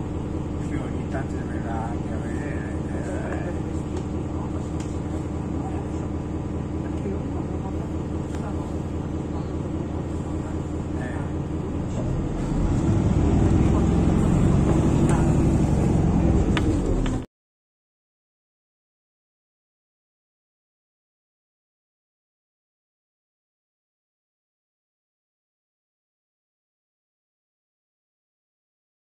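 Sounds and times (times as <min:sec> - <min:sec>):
low traffic rumble: 0:00.0 - 0:17.3
faint voices: 0:00.6 - 0:17.2.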